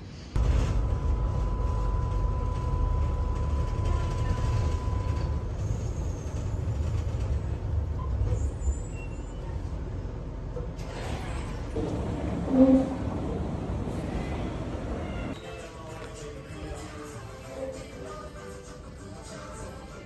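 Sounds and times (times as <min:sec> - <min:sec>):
tram rumble: 0:00.0 - 0:16.4.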